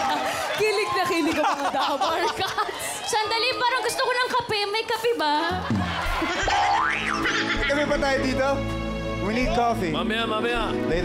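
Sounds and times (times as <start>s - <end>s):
background music with bass: 5.7s - 11.0s.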